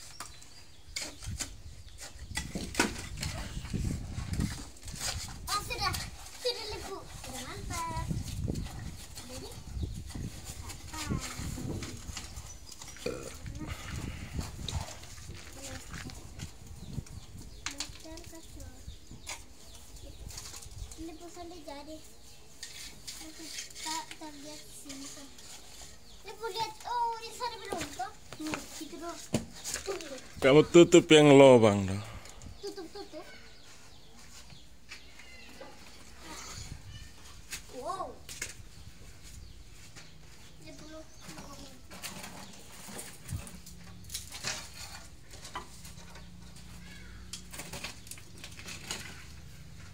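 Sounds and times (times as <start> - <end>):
trowels scraping plaster on brick: 0.1 - 16.0, 22.5 - 30.3.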